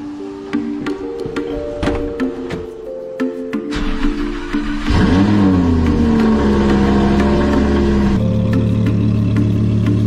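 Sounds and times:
car engine idling: 0:03.7 - 0:10.0.

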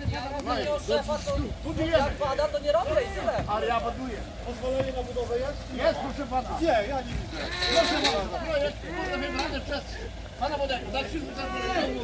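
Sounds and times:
people shouting together: 0:07.4 - 0:09.6, 0:11.1 - 0:12.0.

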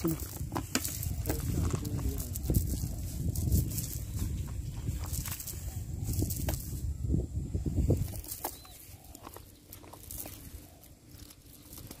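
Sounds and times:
net rustling on grass: 0:00.0 - 0:12.0.

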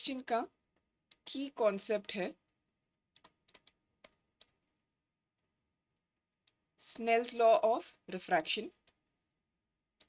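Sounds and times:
stylus tapping on a screen: 0:03.1 - 0:04.8.

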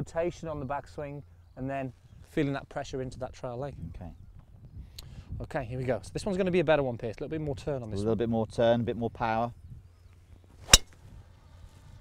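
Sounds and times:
golf club striking ball: 0:10.6 - 0:11.0.

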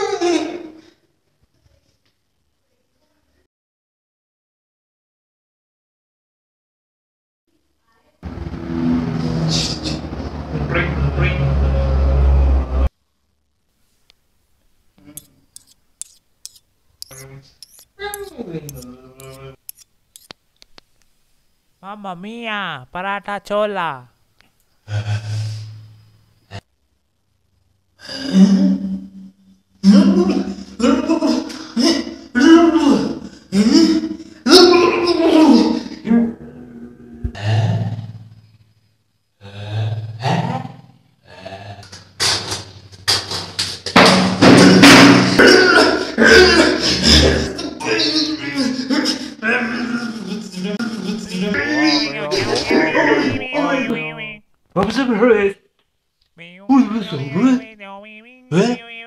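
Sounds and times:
clicking mouth sounds: 0:15.0 - 0:20.8
man imitating engine buzzing: 0:51.2 - 0:54.4, 0:56.4 - 0:59.0
brief low voice: 0:51.3 - 0:54.4, 0:56.4 - 0:59.0.

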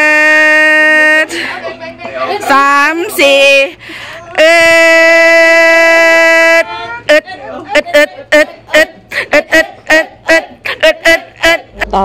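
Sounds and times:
man crying out long eeeh: 0:00.0 - 0:01.3, 0:04.2 - 0:07.5.

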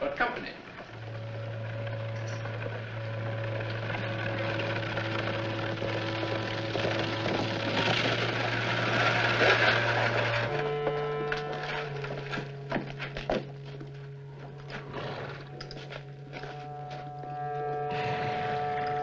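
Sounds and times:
horse carriage clattering: 0:00.7 - 0:16.7
orchestral music: 0:00.8 - 0:19.0.

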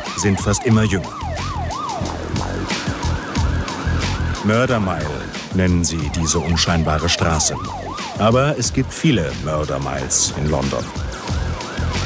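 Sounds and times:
siren in fast yelp: 0:00.0 - 0:08.5, 0:11.2 - 0:12.0
steady drum beat: 0:00.0 - 0:12.0.

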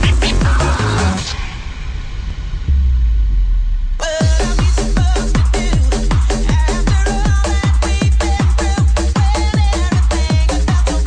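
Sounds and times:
long held bass note: 0:00.0 - 0:06.1
dance music bass rumble: 0:00.0 - 0:11.0.

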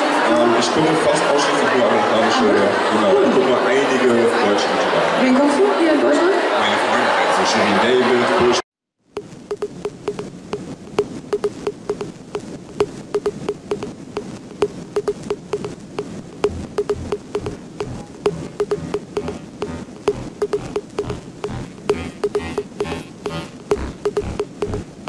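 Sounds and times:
steady background noise: 0:09.1 - 0:25.0
sharp ringing clicks: 0:09.2 - 0:10.3, 0:11.0 - 0:13.9, 0:14.5 - 0:24.8
dull low thuds: 0:15.0 - 0:25.0.

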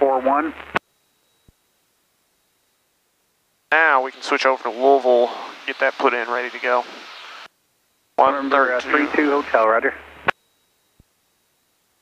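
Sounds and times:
intercom low hum: 0:00.0 - 0:00.8, 0:03.7 - 0:07.5, 0:08.1 - 0:10.4.

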